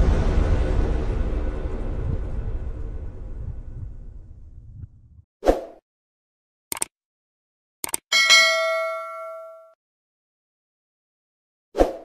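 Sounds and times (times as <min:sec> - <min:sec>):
mouse double-click: 0:06.7 - 0:06.9, 0:07.8 - 0:08.0
notification bell chime: 0:08.1 - 0:09.8.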